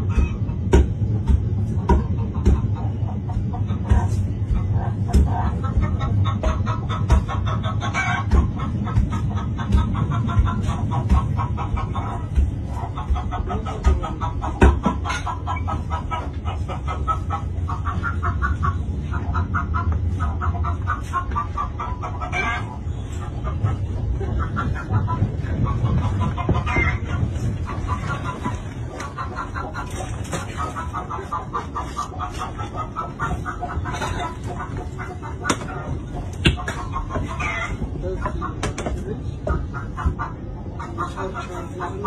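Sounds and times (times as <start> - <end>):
rapid clucking calls: 0.0 - 42.0
train carriage rumble: 0.0 - 42.0.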